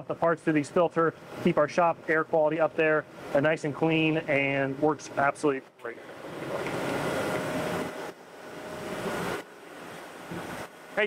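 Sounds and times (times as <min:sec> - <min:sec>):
faint steady whine: 0:00.0 - 0:11.0.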